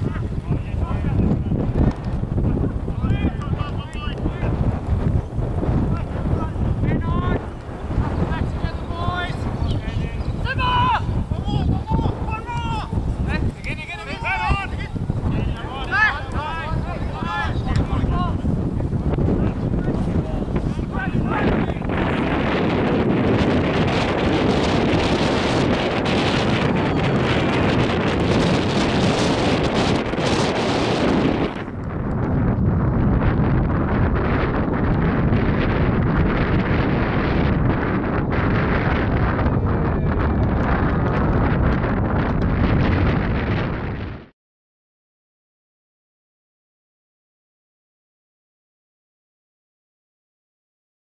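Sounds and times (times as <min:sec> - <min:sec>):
wind buffeting microphone: 0:00.0 - 0:44.3.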